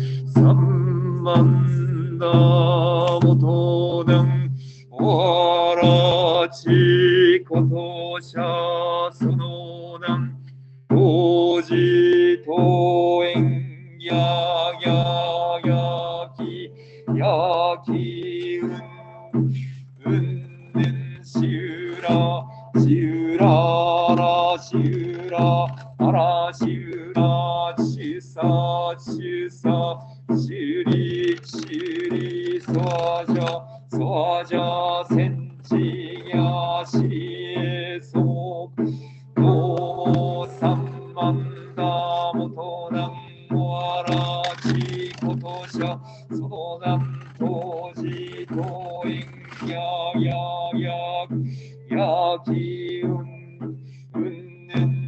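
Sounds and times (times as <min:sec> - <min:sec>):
man chanting: 0:00.0 - 0:55.0.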